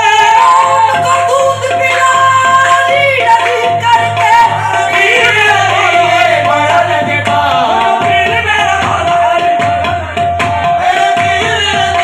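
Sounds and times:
lead voice singing: 0.0 - 12.0.

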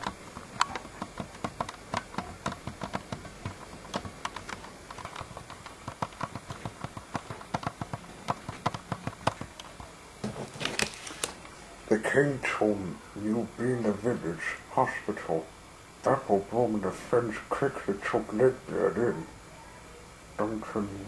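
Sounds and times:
plastic toys clicking and tapping: 0.0 - 9.9.

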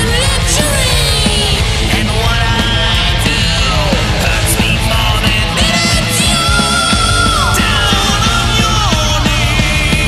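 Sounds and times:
heavy metal song: 0.0 - 10.0.

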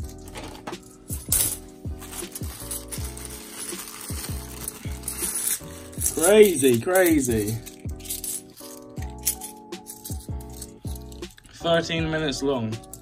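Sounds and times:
coins clinking: 0.0 - 11.5, 12.7 - 13.0
plastic bag rustling: 0.2 - 7.7.

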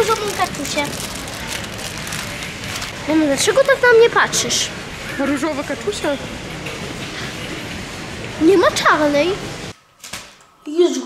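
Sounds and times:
supermarket background noise: 0.0 - 10.9.

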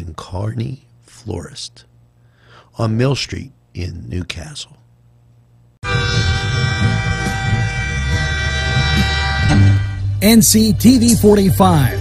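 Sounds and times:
train horn: 5.8 - 10.6.

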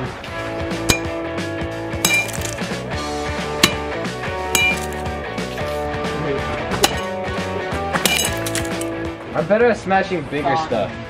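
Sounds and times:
metal bat striking camera: 0.9 - 1.2, 3.6 - 4.0, 6.8 - 7.2.

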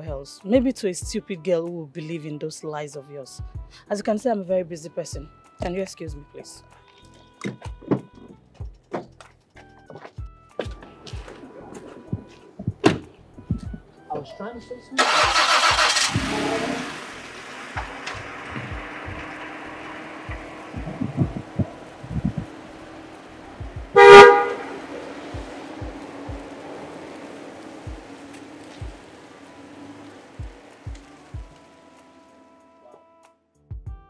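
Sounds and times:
quiet background music: 0.0 - 33.4
car horn: 15.0 - 32.6.

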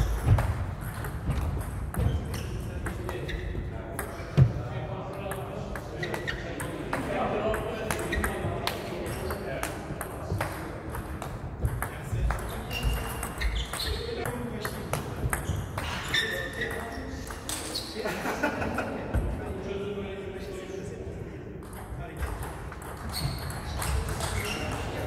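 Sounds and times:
table tennis ball bouncing on table: 0.0 - 4.5, 5.2 - 16.0, 21.6 - 25.0
table tennis ball pinging off paddles: 0.0 - 4.5, 5.2 - 17.7, 21.6 - 25.0.

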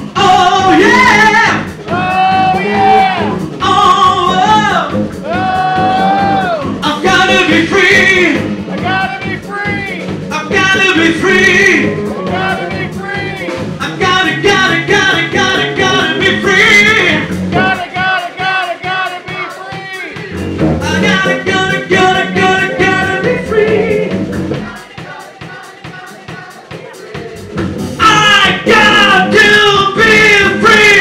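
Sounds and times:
lead vocal singing: 0.0 - 31.0
live rock band playing: 0.0 - 31.0.

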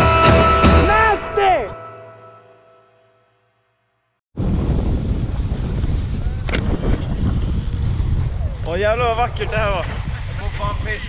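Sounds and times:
wind buffeting microphone: 4.4 - 11.0.

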